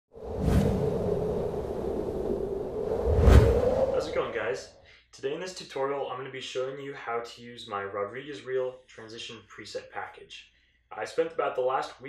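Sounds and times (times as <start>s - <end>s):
whoosh: 0.2s - 4.6s
low rumble: 0.2s - 4.8s.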